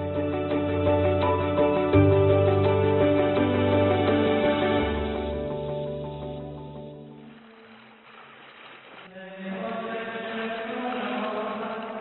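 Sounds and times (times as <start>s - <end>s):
slow church chant: 9.1s - 12.0s.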